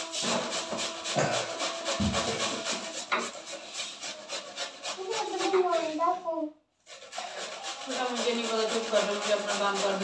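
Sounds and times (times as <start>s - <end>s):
radish rasping on metal grater: 0.0s - 6.2s, 6.8s - 10.0s.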